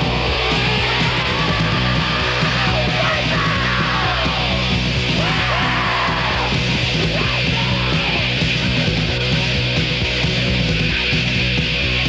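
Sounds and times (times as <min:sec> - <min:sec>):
rock band playing: 0:00.0 - 0:12.0
person yelling vocals: 0:00.8 - 0:04.4, 0:05.2 - 0:08.3.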